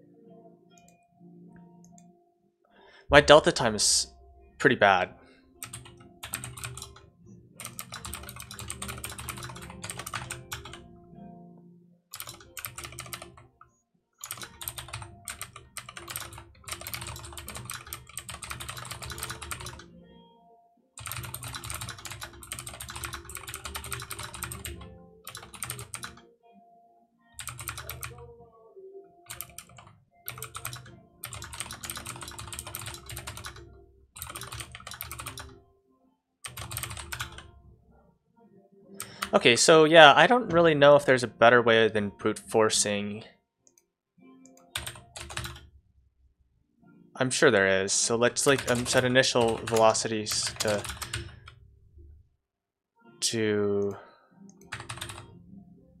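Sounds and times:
typing on computer keyboard: 0:05.6 - 0:07.0, 0:07.6 - 0:10.8, 0:12.1 - 0:13.5, 0:14.2 - 0:19.8, 0:21.0 - 0:26.2, 0:27.4 - 0:28.3, 0:29.3 - 0:33.6, 0:34.2 - 0:35.5, 0:36.4 - 0:37.5, 0:39.0 - 0:39.5, 0:44.6 - 0:45.7, 0:48.4 - 0:51.6, 0:54.6 - 0:55.3.

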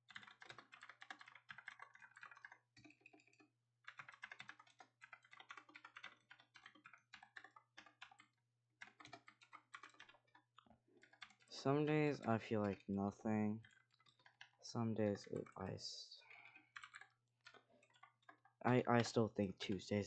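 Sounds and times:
computer keyboard typing: 0:00.0 - 0:20.0.

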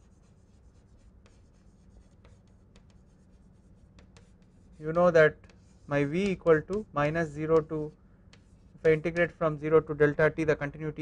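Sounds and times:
chalk scratching on blackboard: 0:00.0 - 0:09.6.

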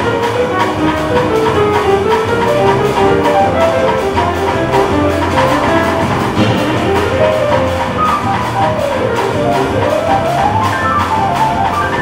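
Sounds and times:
drums and cymbals: 0:00.0 - 0:12.0
piano notes: 0:00.0 - 0:12.0.

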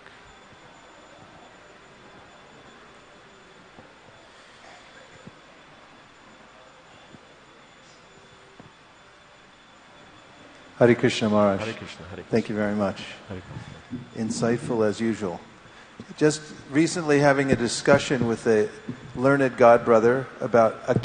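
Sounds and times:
steady hiss: 0:00.0 - 0:21.0
thin high whine: 0:00.0 - 0:21.0.

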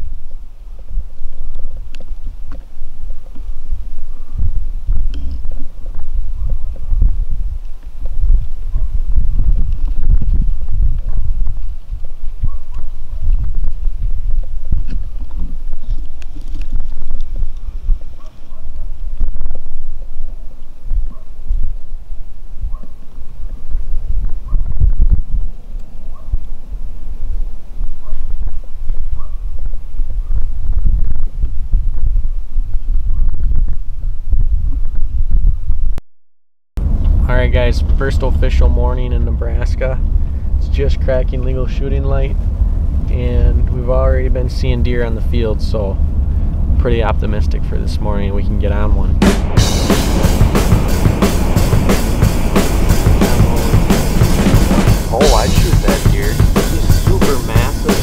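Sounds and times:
wind buffeting microphone: 0:00.0 - 0:36.0, 0:36.8 - 0:58.0.

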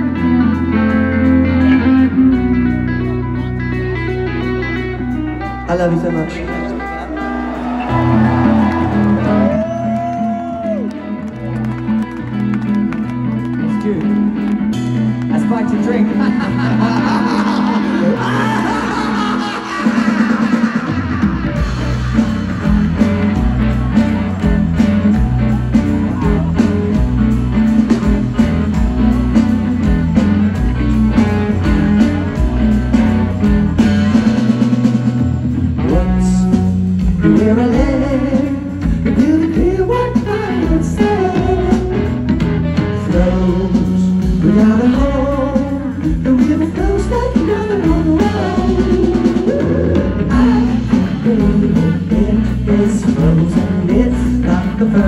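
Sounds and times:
bending guitar lead line: 0:00.0 - 0:55.0
live rock band playing: 0:00.0 - 0:55.0.

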